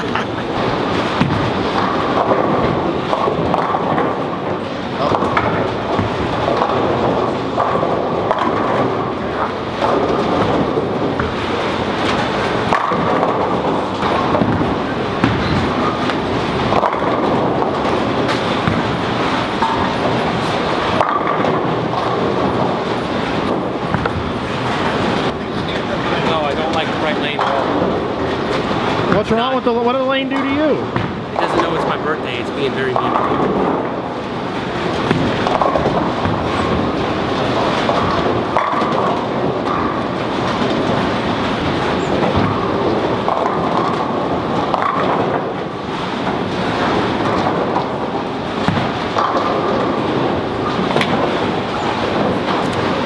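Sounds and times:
bowling balls rolling: 0.0s - 53.0s
bowling pins crashing: 0.0s - 53.0s.

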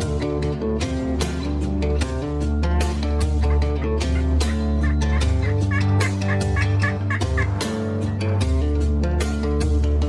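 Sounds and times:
guitar music: 0.0s - 10.0s
turkey call notes: 3.4s - 7.9s.

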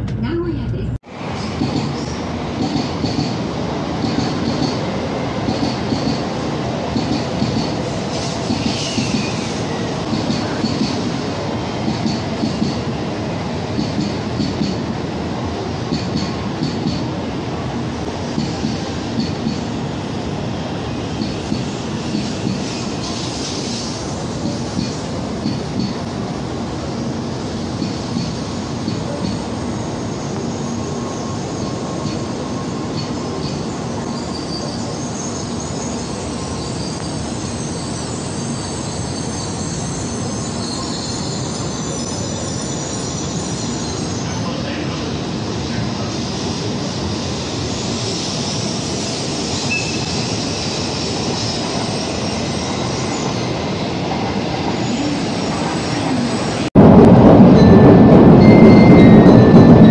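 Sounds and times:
train rumbling: 0.0s - 59.9s
train wheels clacking: 1.5s - 13.0s, 13.7s - 15.0s, 15.8s - 17.2s, 18.2s - 19.7s, 21.1s - 26.1s, 27.7s - 30.7s
wheel squeals: 32.9s - 44.3s, 48.0s - 53.8s.

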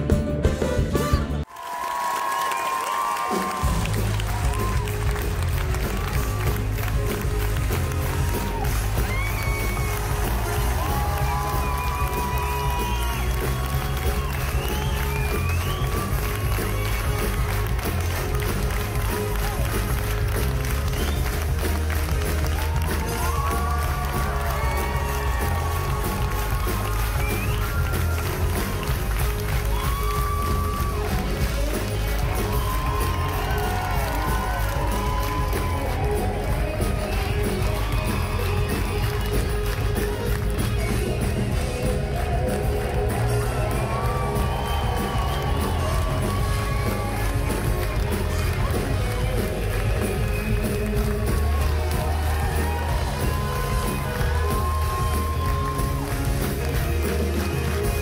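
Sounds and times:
live band with heavy bass: 0.0s - 1.4s, 3.4s - 58.0s
audience clapping and cheering: 0.0s - 58.0s.

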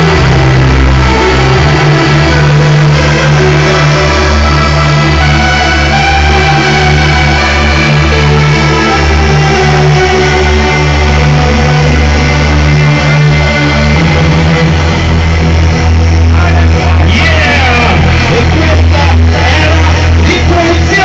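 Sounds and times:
heavy electronic bass: 0.0s - 21.0s
synth chords: 0.0s - 21.0s.

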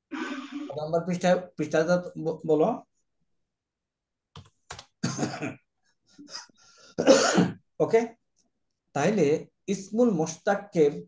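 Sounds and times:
person clearing throat and coughing: 5.0s - 7.6s.

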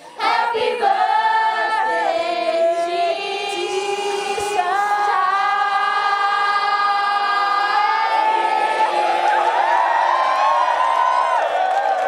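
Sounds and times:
women singing a held note: 1.8s - 8.2s
group cheering and squealing: 4.6s - 12.0s.

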